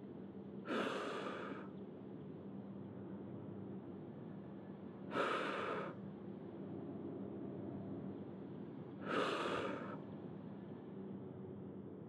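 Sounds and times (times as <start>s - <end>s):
low background hum: 0.0s - 12.0s
person exhaling sharply: 0.7s - 1.7s, 9.0s - 10.0s.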